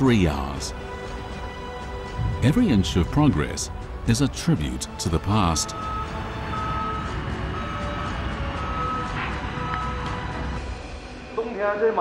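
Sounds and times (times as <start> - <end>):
construction machinery rumble: 1.9 - 10.6
reversing alarm beeps: 5.7 - 10.1.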